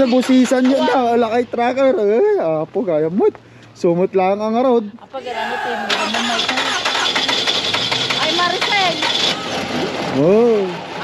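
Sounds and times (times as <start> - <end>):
car engine starting and running: 5.9 - 9.2.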